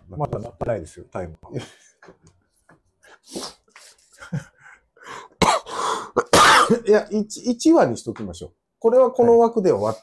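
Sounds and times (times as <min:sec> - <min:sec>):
man coughing: 0:05.4 - 0:06.9.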